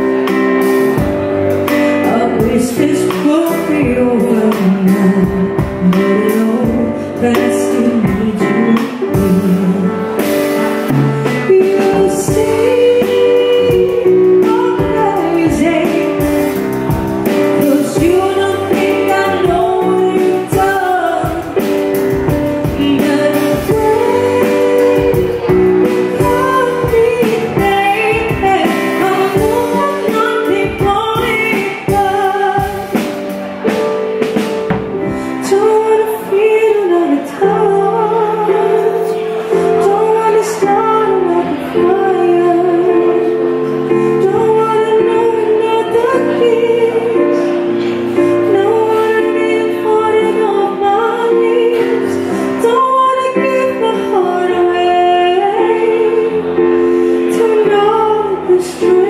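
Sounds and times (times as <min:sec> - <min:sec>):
bass line: 0:00.0 - 0:35.7
band accompaniment: 0:00.0 - 0:59.0
drum kit: 0:00.0 - 0:59.0
keyboard chords: 0:00.0 - 0:59.0
woman singing into microphone: 0:00.0 - 0:59.0.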